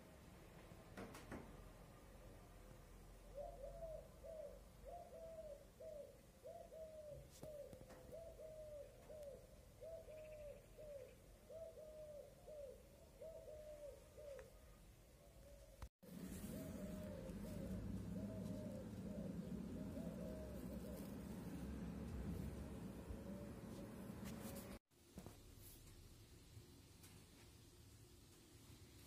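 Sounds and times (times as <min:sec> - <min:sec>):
distant cuckoo calling: 0:03.2 - 0:24.8.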